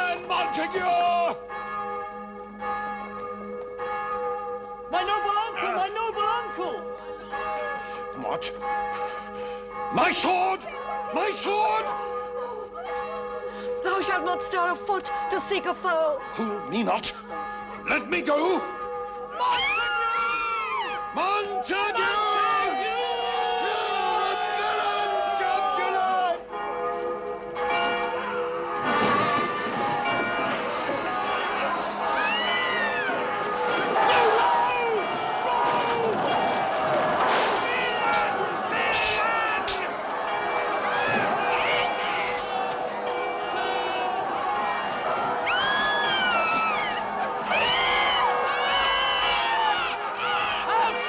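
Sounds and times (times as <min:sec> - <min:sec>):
church bell ringing: 0:00.0 - 0:51.0.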